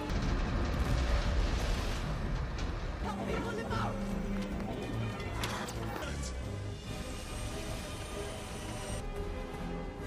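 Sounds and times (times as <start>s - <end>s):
action film score: 0.0s - 10.0s.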